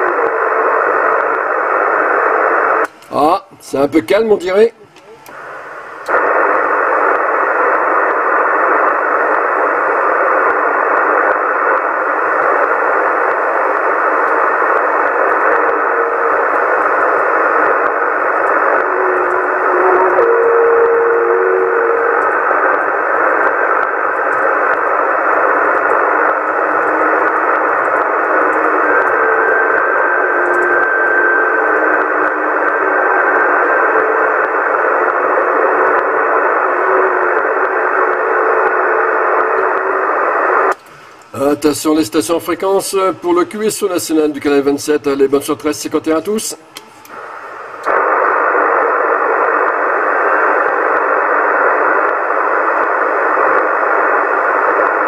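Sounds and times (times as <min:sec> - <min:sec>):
radio static hiss: 0:00.0 - 0:55.0.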